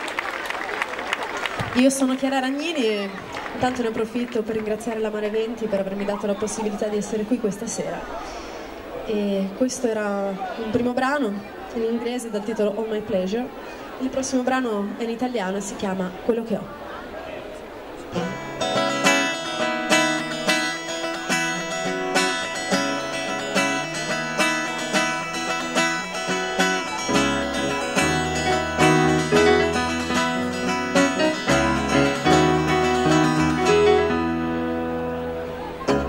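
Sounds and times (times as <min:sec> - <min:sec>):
acoustic guitar picking: 0:18.0 - 0:36.0.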